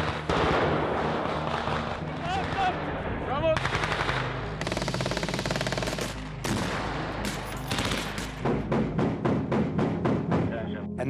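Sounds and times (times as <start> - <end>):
automatic gunfire bursts: 3.6 - 8.4.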